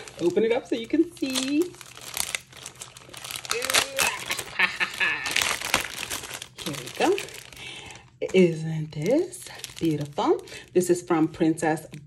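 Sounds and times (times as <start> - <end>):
cellophane pack rustling: 0.0 - 10.8
plastic bag crinkling: 0.0 - 10.8.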